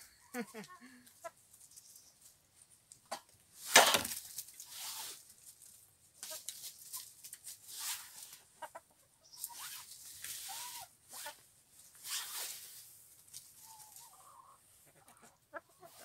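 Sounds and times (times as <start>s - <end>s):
hens clucking: 0.0s - 3.4s, 5.7s - 11.6s, 13.1s - 16.0s
rustling in dry leaves: 1.4s - 14.4s.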